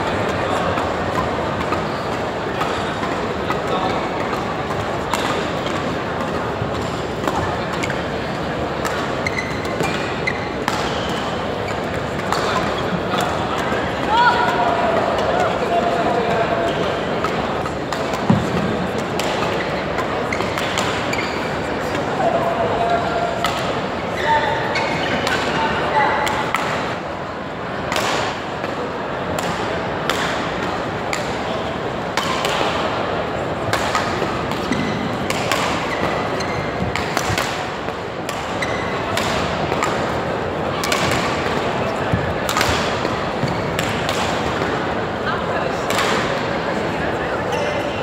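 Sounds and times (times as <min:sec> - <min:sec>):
people chattering: 0:00.0 - 0:48.0
rackets striking shuttlecock: 0:00.7 - 0:08.1, 0:08.8 - 0:15.5, 0:16.7 - 0:22.0, 0:23.4 - 0:23.9, 0:26.2 - 0:27.0, 0:27.9 - 0:31.4, 0:32.1 - 0:32.9, 0:33.6 - 0:44.9, 0:45.7 - 0:46.5
shoes squeaking on floor: 0:09.0 - 0:13.0, 0:19.4 - 0:21.7, 0:24.1 - 0:25.3, 0:34.6 - 0:35.1, 0:35.8 - 0:37.0, 0:38.5 - 0:39.1.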